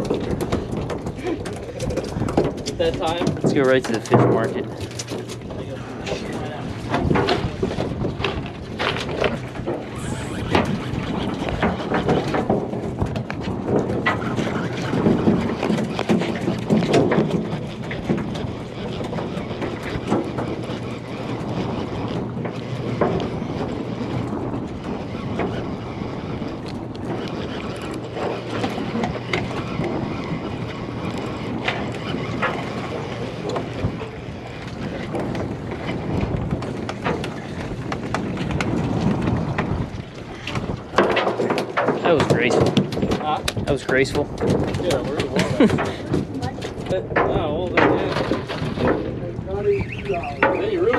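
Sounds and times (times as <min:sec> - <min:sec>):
low boat engine hum: 0:00.0 - 0:50.9
wind on microphone: 0:00.0 - 0:50.9
indistinct voices: 0:09.9 - 0:10.7.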